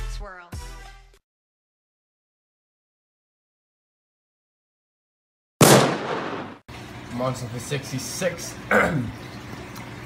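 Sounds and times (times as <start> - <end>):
gunshot bang: 5.6 - 6.6.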